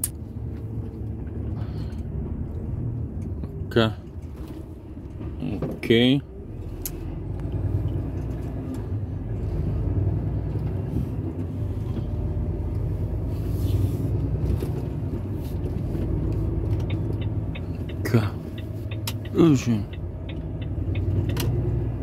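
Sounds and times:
lorry engine drone in cab: 0.0 - 22.0.

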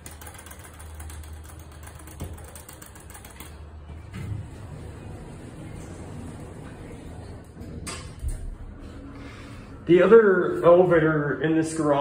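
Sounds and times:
elevator hum: 0.8 - 10.2.

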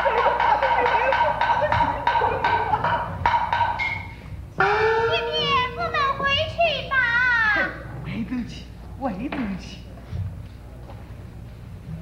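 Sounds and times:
wood clapper and drum strokes: 0.0 - 4.3.

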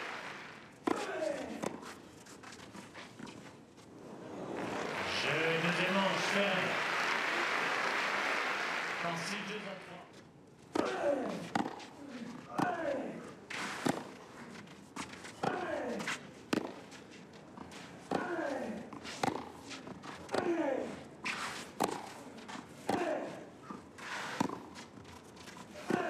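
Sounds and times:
racket striking tennis ball: 13.5 - 14.1, 21.8 - 22.2, 22.8 - 23.2.

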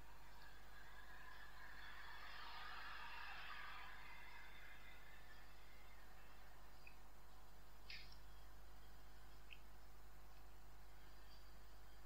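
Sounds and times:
low hum: 0.0 - 12.0
soft hiss: 0.0 - 12.0.

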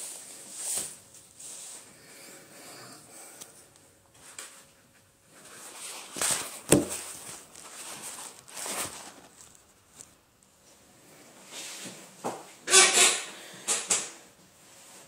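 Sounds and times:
rustling and handling noise: 3.3 - 12.6.

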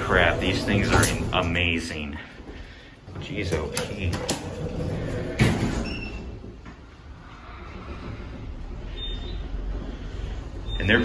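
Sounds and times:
elevator doors closing with knock: 0.0 - 2.0, 3.1 - 11.0
elevator motor hum: 0.0 - 11.0.

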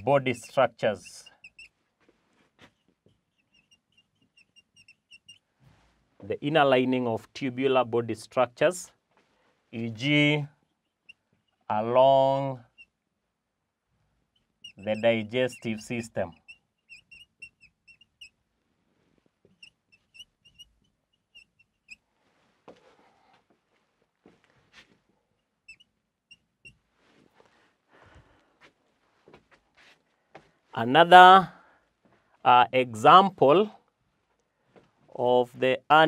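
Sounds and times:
marker squeaking on whiteboard: 0.0 - 5.5, 10.6 - 11.8, 12.4 - 13.0, 14.2 - 18.4, 19.4 - 22.1, 24.6 - 27.6.

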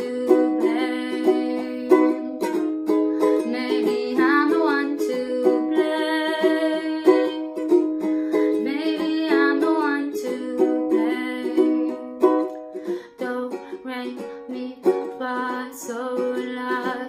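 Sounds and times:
ukulele strumming chords: 0.0 - 17.0.

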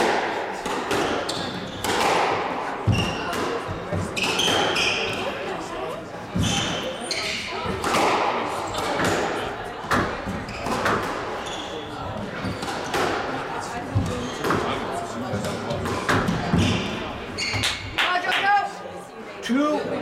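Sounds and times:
squash ball hitting racquets and walls: 0.0 - 18.0
shoes squeaking on wooden floor: 1.0 - 2.1, 2.8 - 5.4, 6.3 - 7.8, 9.9 - 13.1, 13.8 - 18.0.

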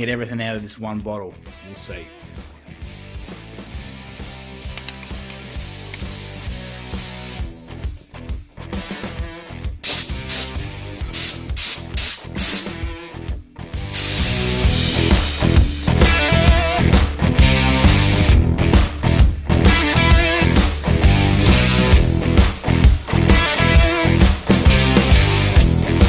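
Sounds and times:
background guitar music: 0.0 - 26.0
spray gun hissing: 3.6 - 8.3, 9.8 - 12.8, 13.9 - 15.5, 20.2 - 26.0.

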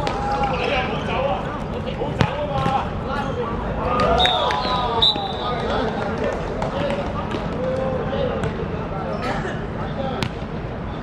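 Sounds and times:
players shouting: 0.0 - 8.4
football kicked hard: 2.2 - 2.8
high whistle tone: 4.2 - 5.6.

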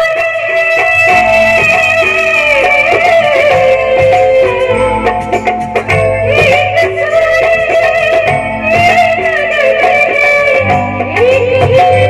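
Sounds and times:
drum strokes: 0.8 - 12.0.

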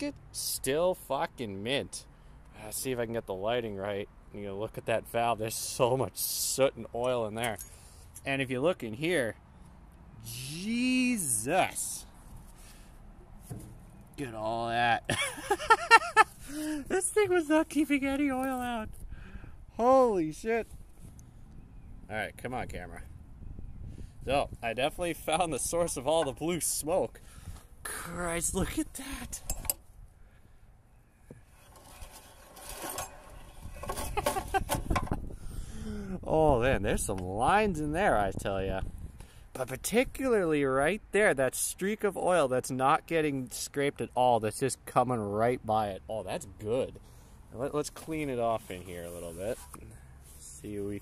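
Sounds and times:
engine parts clicking and rustling: 12.2 - 14.2, 31.3 - 35.4.

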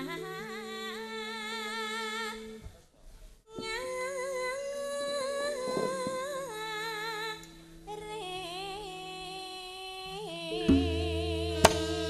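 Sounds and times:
soft sustained keyboard tones: 0.0 - 2.6, 3.6 - 12.0
woman singing with vibrato: 0.0 - 2.6, 3.5 - 12.0.

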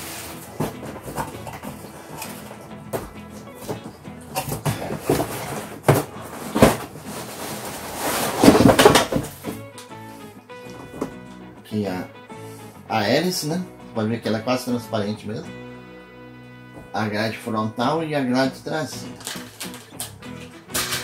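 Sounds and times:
cardboard packaging rustling: 0.0 - 9.8, 19.2 - 19.9
background music: 0.0 - 21.0.

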